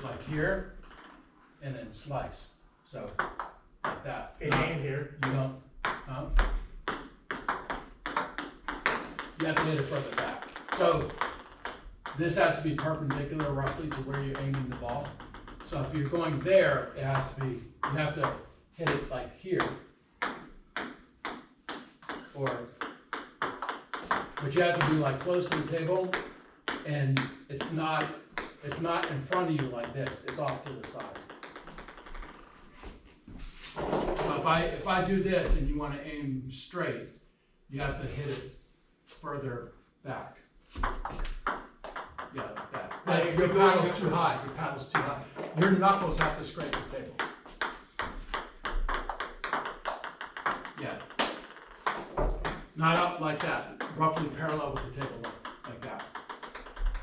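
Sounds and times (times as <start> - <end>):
table tennis balls clicking: 0.8 - 1.3, 3.1 - 19.0, 19.6 - 32.7, 40.8 - 57.0
table tennis ball clicking: 14.4 - 15.7, 19.6 - 25.0, 30.5 - 32.5, 47.2 - 52.8, 54.8 - 57.0.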